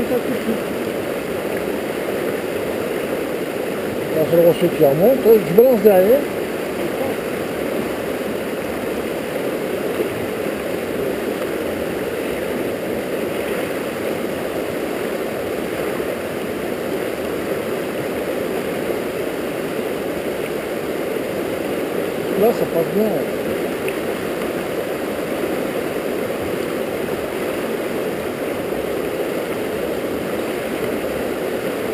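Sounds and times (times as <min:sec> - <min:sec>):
river rushing over rocks: 0:00.0 - 0:31.9.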